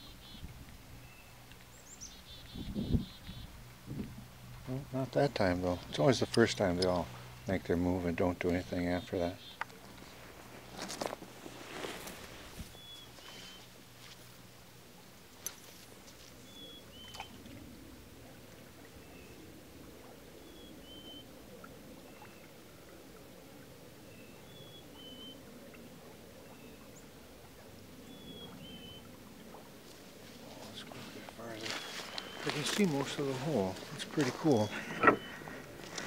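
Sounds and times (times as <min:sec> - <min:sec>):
stream water flowing: 0:00.0 - 0:36.0.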